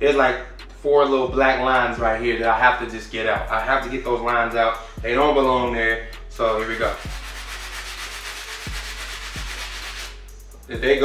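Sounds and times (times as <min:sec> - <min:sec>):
brush scrubbing a sneaker: 0:06.8 - 0:10.2.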